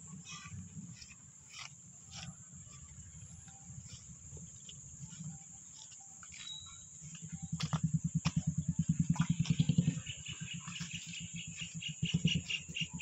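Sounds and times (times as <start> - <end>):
rustling through plants: 0.1 - 7.9
high-pitched insect drone: 0.1 - 12.6.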